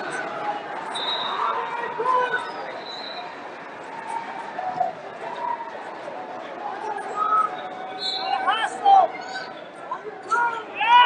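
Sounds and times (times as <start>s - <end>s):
crowd hubbub in a hall: 0.0s - 11.0s.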